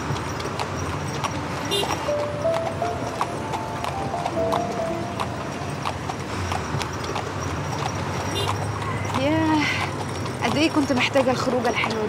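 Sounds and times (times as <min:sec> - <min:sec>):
hooves clip-clopping on pavement: 0:00.0 - 0:12.0
background music: 0:02.0 - 0:06.1.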